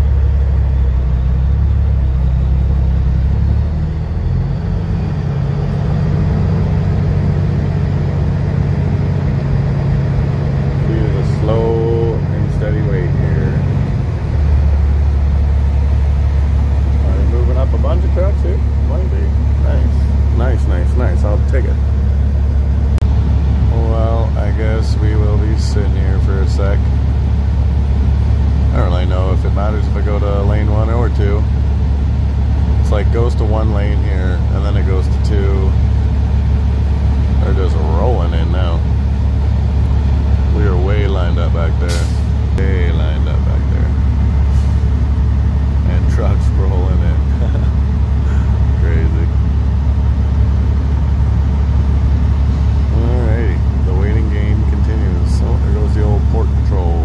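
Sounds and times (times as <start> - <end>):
diesel truck engine idling: 0.0 - 57.0
indistinct voices: 10.7 - 13.9, 16.9 - 21.9, 23.6 - 26.9, 37.4 - 38.9, 40.4 - 44.1, 45.8 - 49.4, 52.8 - 57.0.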